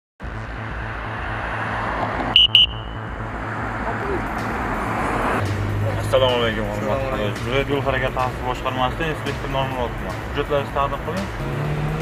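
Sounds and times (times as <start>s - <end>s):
roadside traffic hum: 0.2s - 12.0s
short high electronic beeps: 2.4s - 3.1s.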